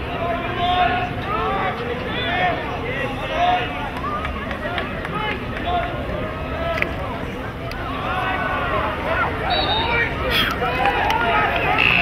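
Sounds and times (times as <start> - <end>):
voices shouting: 0.0 - 12.0.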